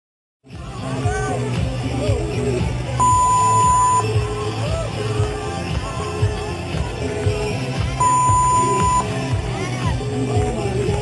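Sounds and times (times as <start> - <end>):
rock music with singing: 0.5 - 11.0
high electronic beep: 3.0 - 4.2, 8.0 - 9.1.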